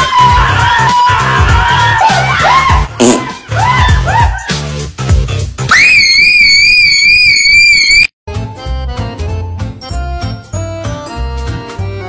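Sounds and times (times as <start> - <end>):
high-pitched scream: 5.7 - 8.1.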